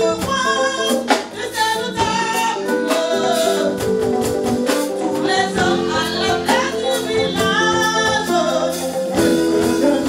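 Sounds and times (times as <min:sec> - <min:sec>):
drums: 0:00.0 - 0:10.0
live band music: 0:00.0 - 0:10.0
woman singing lead: 0:00.0 - 0:10.0.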